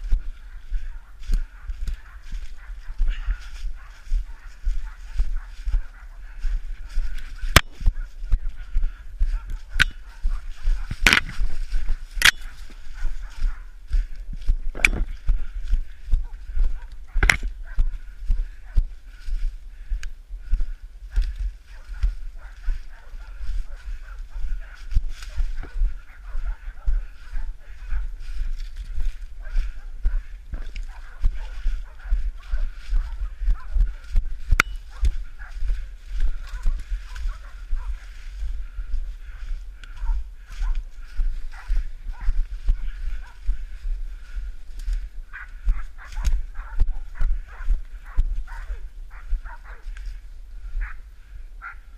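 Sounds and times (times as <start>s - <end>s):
footsteps crunching dry leaves: 0.0s - 50.9s
microphone handling rumble and knocks: 7.0s - 12.2s, 14.2s - 18.4s.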